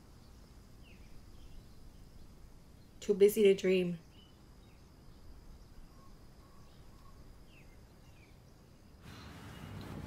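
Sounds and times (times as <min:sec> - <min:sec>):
soft background hiss: 0:00.0 - 0:10.0.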